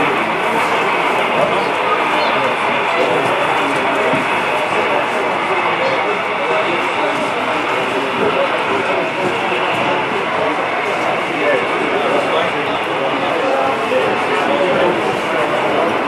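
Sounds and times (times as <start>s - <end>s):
crowd babble in a hall: 0.0s - 16.0s.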